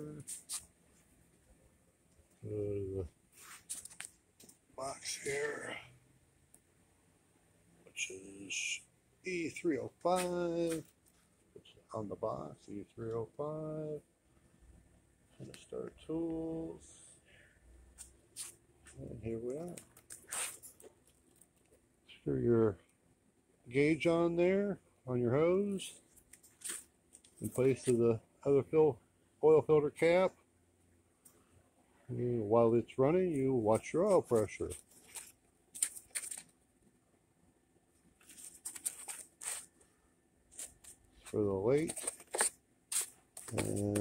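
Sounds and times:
brief rustle: 3.4s - 4.2s
bubble wrap crinkling: 34.8s - 36.6s, 38.2s - 39.8s, 40.5s - 44.0s.

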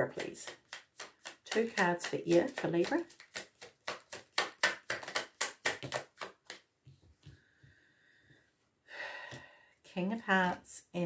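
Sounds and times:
cards being shuffled: 0.2s - 6.7s.

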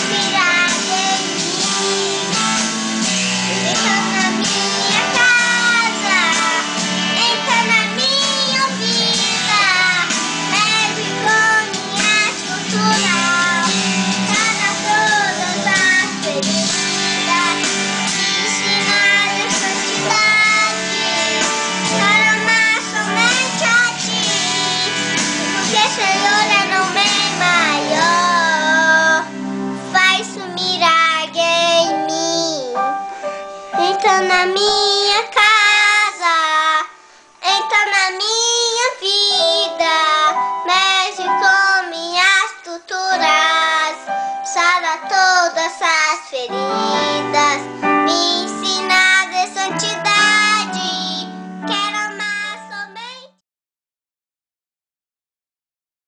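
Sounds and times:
boy singing: 0.0s - 2.1s, 3.5s - 29.3s, 29.9s - 32.9s, 33.8s - 53.4s
instrumental backing track with guitar: 0.0s - 35.6s, 43.3s - 52.8s.

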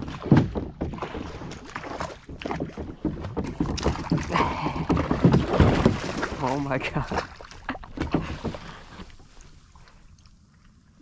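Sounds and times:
fish thumping on plastic hull: 0.0s - 6.6s
fish splashing: 0.0s - 10.9s.

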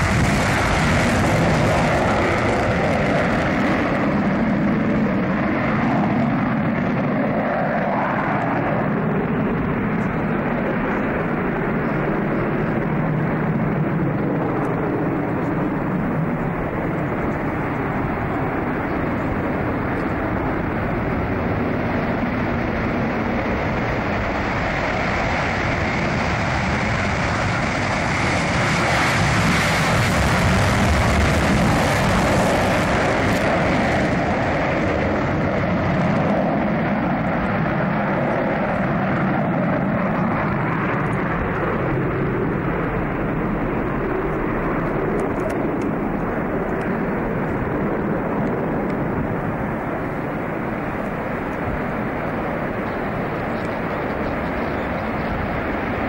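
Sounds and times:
jet engine roar: 0.0s - 56.0s.

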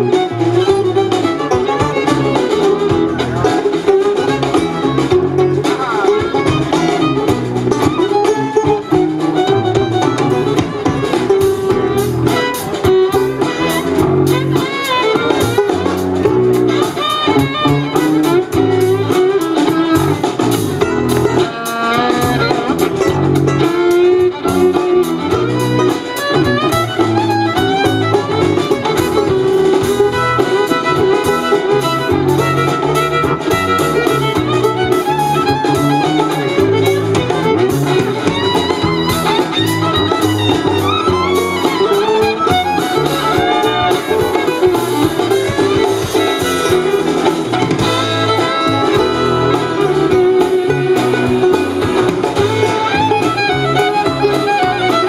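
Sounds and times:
acoustic string band playing: 0.0s - 55.0s
fiddle: 0.0s - 55.0s.

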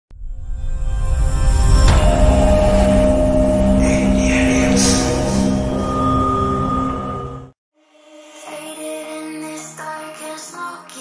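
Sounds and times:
deep rumble: 0.1s - 7.6s
held synth tones: 1.9s - 7.5s
glittering sparkle sounds: 2.2s - 7.5s.

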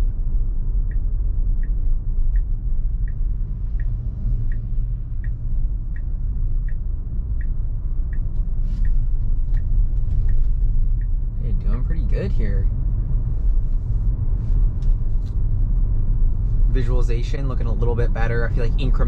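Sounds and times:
road and tyre rumble: 0.0s - 19.0s
turn signal ticking: 0.0s - 19.0s.

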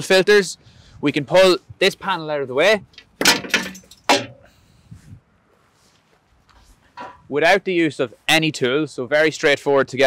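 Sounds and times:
quiet outdoor background: 0.0s - 10.0s
faint handling sounds: 4.9s - 7.3s.

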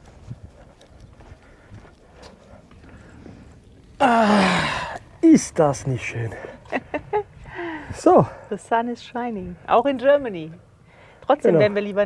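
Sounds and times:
footsteps on stone paving: 0.0s - 4.0s.

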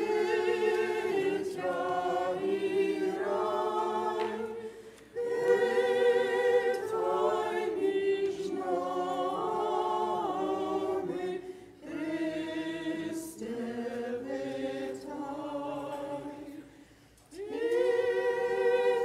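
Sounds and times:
choir singing chant: 0.0s - 19.0s.

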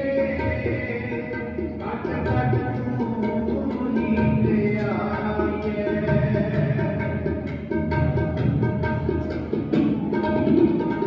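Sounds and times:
tabla strokes: 0.0s - 11.0s.

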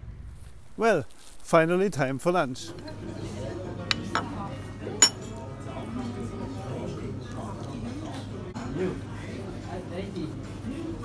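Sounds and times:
murmur of voices: 2.1s - 11.0s
cutlery clinking on glass dish: 2.7s - 5.4s.

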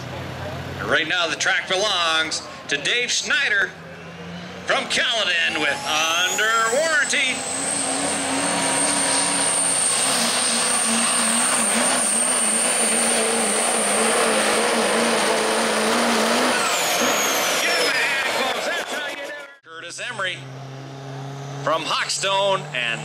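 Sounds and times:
loud diesel engine at full throttle: 0.0s - 19.4s, 20.0s - 23.0s.

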